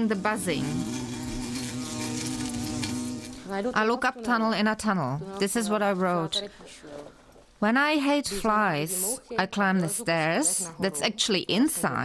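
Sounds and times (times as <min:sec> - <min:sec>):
fly buzzing: 0:00.0 - 0:07.1.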